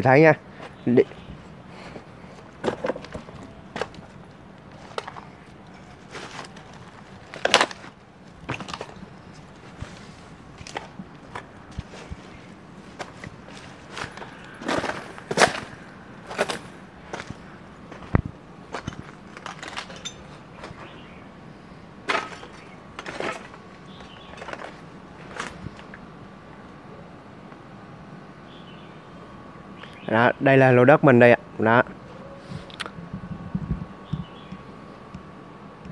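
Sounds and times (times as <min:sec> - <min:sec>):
footsteps crunching on rubble: 0:02.4 - 0:21.1, 0:22.1 - 0:25.9.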